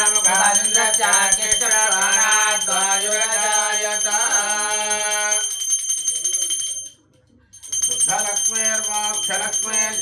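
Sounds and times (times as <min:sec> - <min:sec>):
hand bell ringing rapidly: 0:00.0 - 0:07.0, 0:07.6 - 0:10.0.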